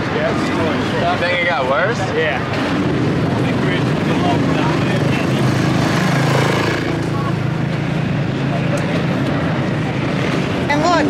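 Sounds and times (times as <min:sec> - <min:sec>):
steady engine drone: 0:00.0 - 0:11.0.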